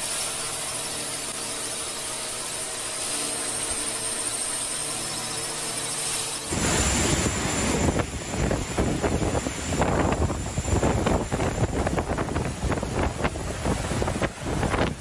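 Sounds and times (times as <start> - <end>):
strong wind buffeting microphone: 6.5 - 15.0.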